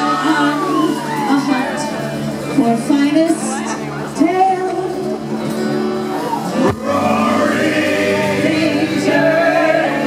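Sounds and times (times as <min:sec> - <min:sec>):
acoustic guitar: 0:00.0 - 0:10.0
upright bass: 0:06.1 - 0:10.0
voices singing together: 0:06.6 - 0:10.0.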